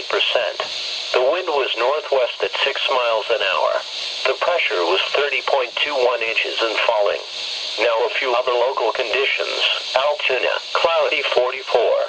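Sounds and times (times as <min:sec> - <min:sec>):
synthesized announcer voice: 0:00.0 - 0:12.0.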